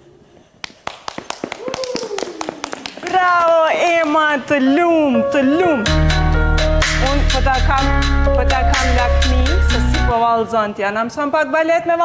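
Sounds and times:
hand claps: 0.6 - 4.2.

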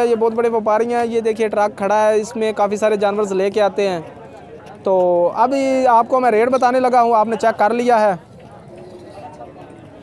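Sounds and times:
distant crowd murmur and bustle: 0.0 - 10.0.

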